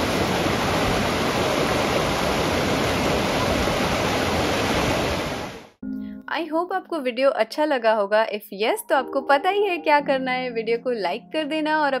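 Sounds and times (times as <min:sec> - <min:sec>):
water rushing over rocks: 0:00.0 - 0:05.7.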